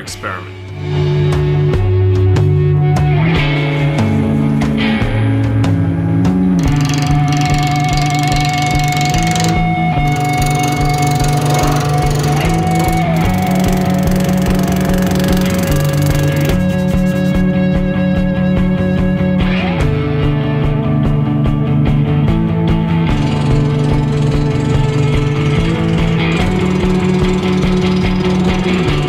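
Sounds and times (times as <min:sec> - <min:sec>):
background music: 0:00.0 - 0:29.0.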